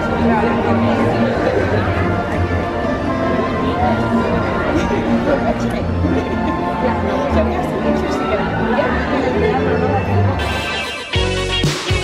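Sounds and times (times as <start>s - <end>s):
background music: 0.0s - 12.0s
indistinct voices talking: 0.0s - 12.0s.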